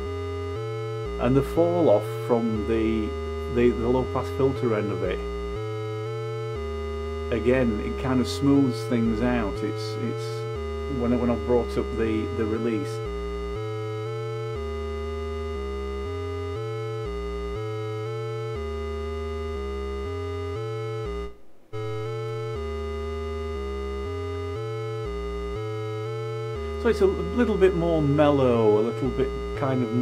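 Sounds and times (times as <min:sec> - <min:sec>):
synth bass line: 0:00.0 - 0:30.0.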